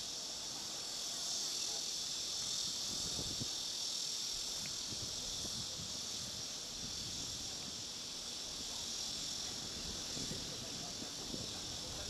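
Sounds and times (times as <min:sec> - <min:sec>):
insect chorus buzzing: 0:00.0 - 0:12.0.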